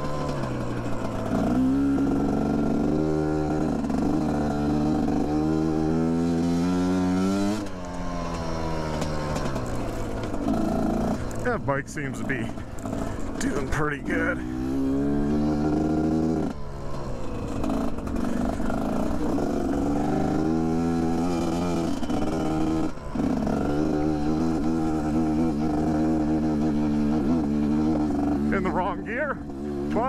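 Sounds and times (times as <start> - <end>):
motorcycle engine under load: 0.0 - 30.0.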